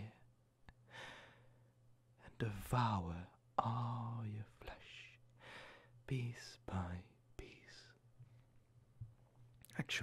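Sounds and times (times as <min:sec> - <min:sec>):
faint low hum: 0:00.0 - 0:10.0
man breathing softly: 0:00.7 - 0:02.3, 0:05.3 - 0:06.0.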